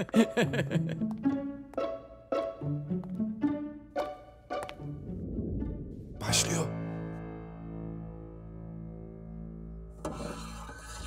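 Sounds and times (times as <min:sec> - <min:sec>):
background music notes: 0:00.0 - 0:11.0.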